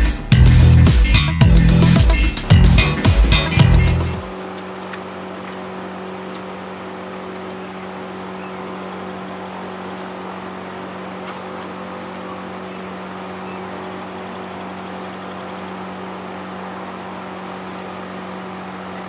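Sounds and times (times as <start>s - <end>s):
mechanical hum: 0.0s - 19.0s.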